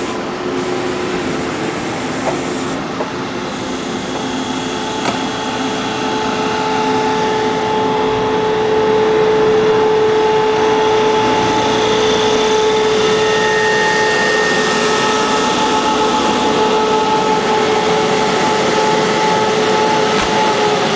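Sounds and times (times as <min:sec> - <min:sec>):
constant high hum: 0:00.0 - 0:20.9
train rumbling past: 0:00.0 - 0:20.9.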